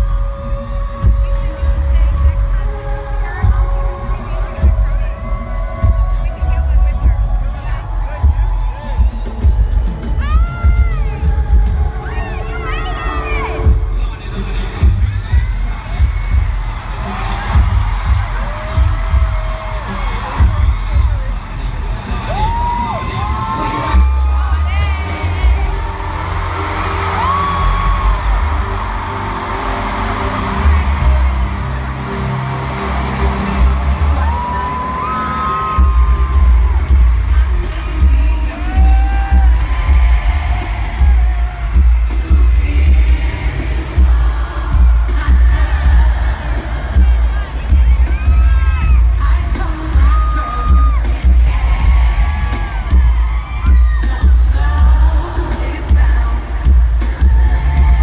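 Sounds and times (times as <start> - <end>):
live pop music over loudspeakers: 0.0 - 58.0
crowd cheering and whooping: 4.0 - 13.8, 14.6 - 58.0.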